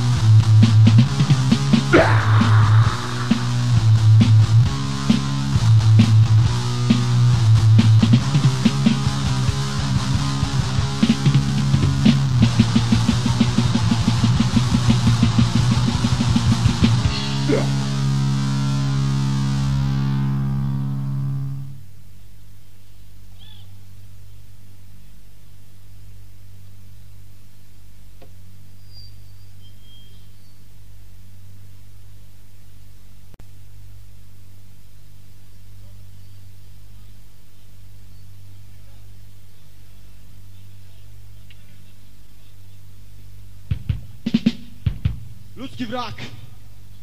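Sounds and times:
tape hiss: 0.0s - 47.0s
distorted electric guitar chord: 1.9s - 21.8s
low electrical hum: 20.2s - 47.0s.

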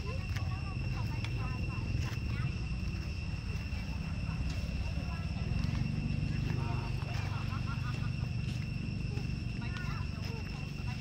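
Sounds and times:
distant people talking: 0.0s - 11.0s
steady low rumble: 0.0s - 11.0s.

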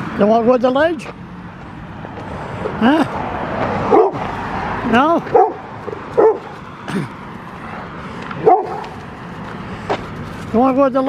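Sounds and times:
dog yipping: 6.2s - 6.5s, 8.4s - 8.9s.

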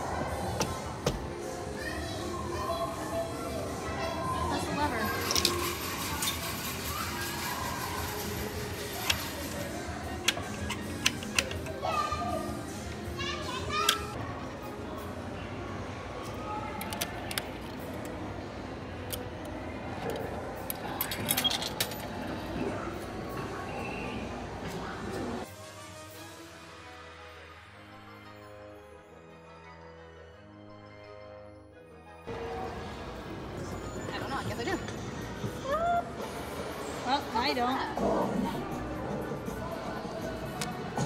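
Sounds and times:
background voices and children: 0.0s - 25.7s, 32.3s - 41.0s.

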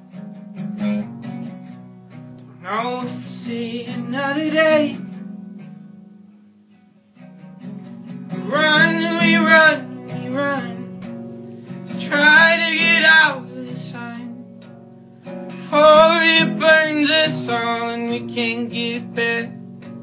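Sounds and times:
acoustic guitar strumming: 0.0s - 20.0s
man singing: 2.6s - 5.0s, 8.3s - 11.1s, 11.8s - 14.4s, 15.5s - 19.6s.

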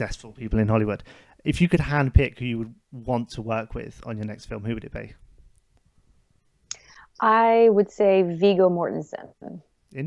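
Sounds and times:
mouth click: 6.7s - 6.9s.

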